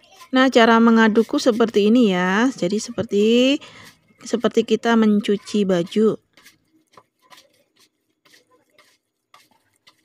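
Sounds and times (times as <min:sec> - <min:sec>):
hand kneading dough: 0:00.0 - 0:10.0.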